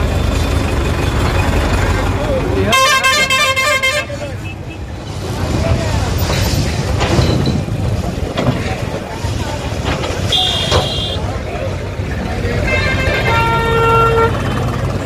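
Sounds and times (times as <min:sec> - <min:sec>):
engine rumble: 0:00.0 - 0:15.0
voices: 0:01.1 - 0:15.0
vehicle horns honking: 0:02.6 - 0:04.9, 0:10.2 - 0:11.3, 0:12.6 - 0:14.7.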